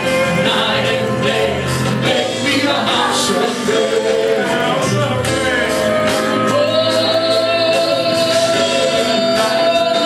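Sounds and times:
gospel worship music with singing: 0.0s - 10.0s.

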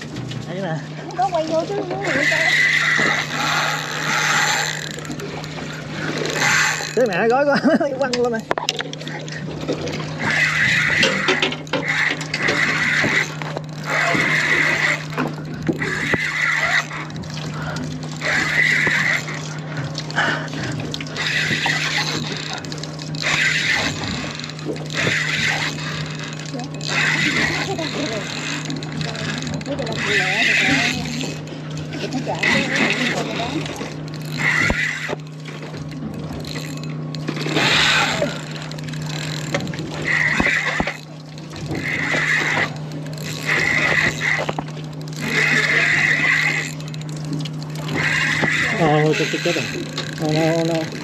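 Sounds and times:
fishing reel whirring: 0.0s - 51.0s
steady low hum: 0.0s - 51.0s.

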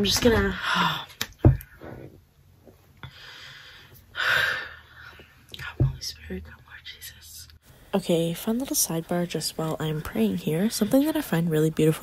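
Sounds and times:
woman whispering: 5.5s - 7.6s.

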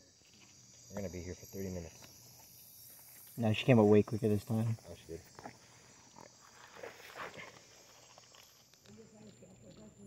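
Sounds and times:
night insects droning: 0.0s - 10.0s.

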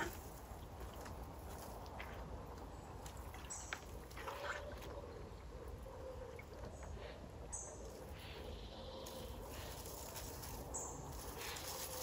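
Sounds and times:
water and mud sloshing: 0.0s - 5.4s.

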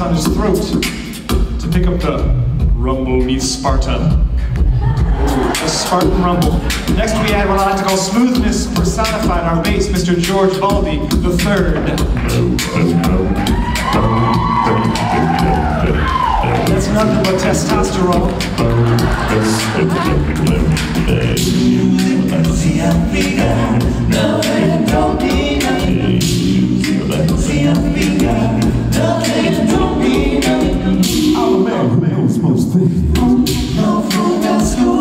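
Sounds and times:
bass voice singing: 0.0s - 35.0s
vocal percussion beats: 0.0s - 35.0s.

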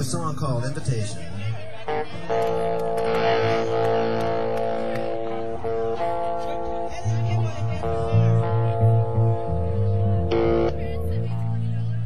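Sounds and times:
electric guitar ringing notes: 1.9s - 12.0s.

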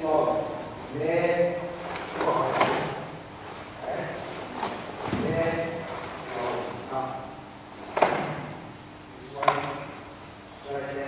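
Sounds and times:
echo in hall: 0.0s - 11.0s.

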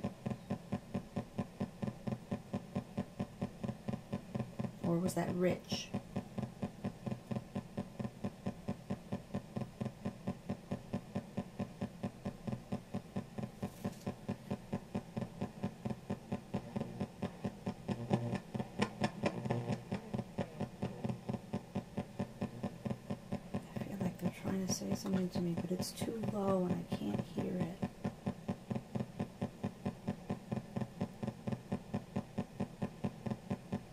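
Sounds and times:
pulsing radio static and hum: 12.2s - 33.9s.

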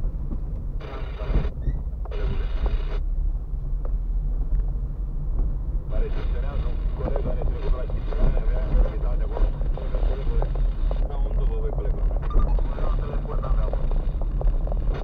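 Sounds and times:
car tyres and engine rumbling: 0.0s - 15.0s.

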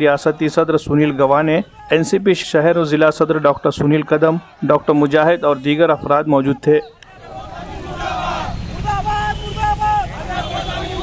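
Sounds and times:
crowd shouting slogans: 0.0s - 5.6s, 6.8s - 11.0s.

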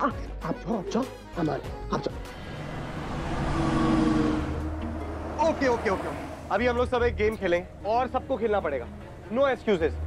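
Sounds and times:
background music: 0.0s - 10.0s
bus driving past: 2.2s - 6.9s.

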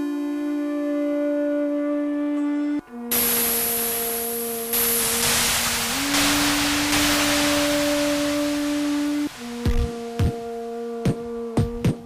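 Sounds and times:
low synthesized drone: 0.0s - 11.4s
loud noise hiss: 3.0s - 12.0s.

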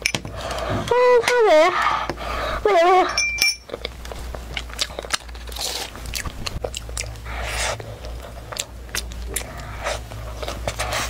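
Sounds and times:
chewing pastry: 3.6s - 11.0s.

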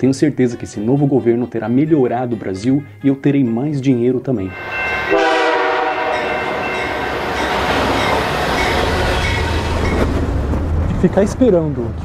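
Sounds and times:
locomotive air horn: 4.5s - 9.8s
train rumbling and clattering: 4.5s - 12.0s.

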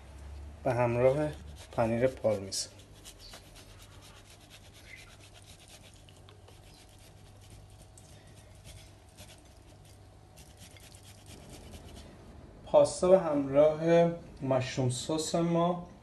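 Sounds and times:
cheese grating: 1.0s - 12.0s.

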